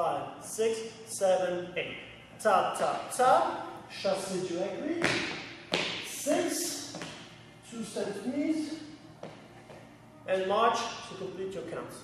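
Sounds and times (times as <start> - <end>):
man calling dance count: 0.0 - 8.8
sneaker tap on gym floor: 5.0 - 6.0, 6.9 - 7.2, 9.2 - 9.8.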